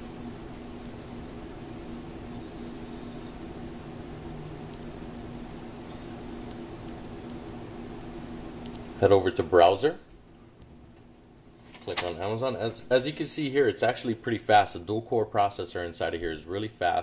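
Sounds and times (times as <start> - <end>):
background hiss: 0.0 - 17.0
faint low hum: 0.0 - 17.0.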